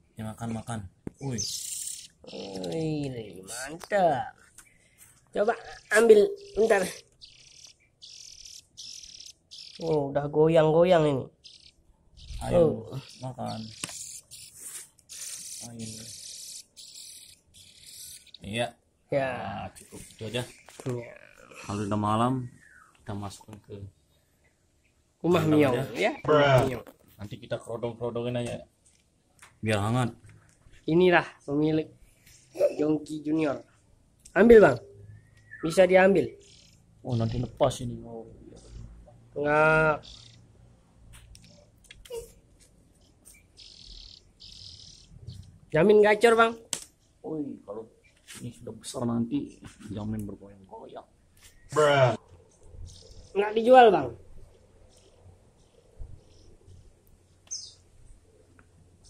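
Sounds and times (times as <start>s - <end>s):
bird chirping: 0.0s - 27.6s, 28.8s - 59.0s
nestling begging calls: 1.2s - 18.7s, 19.9s - 23.5s, 32.2s - 47.2s, 50.8s - 58.5s
buzzy bird call: 5.6s - 10.1s, 11.3s - 18.6s, 40.0s - 40.5s, 43.0s - 45.5s.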